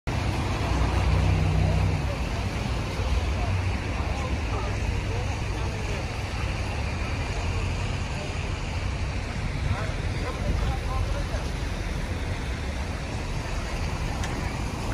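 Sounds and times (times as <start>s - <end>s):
indistinct voices: 0.1s - 14.9s
low city rumble: 0.1s - 14.9s.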